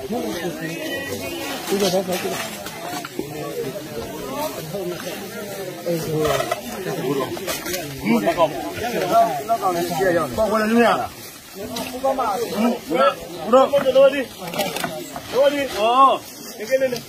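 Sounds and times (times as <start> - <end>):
men talking over each other: 0.0 - 17.0.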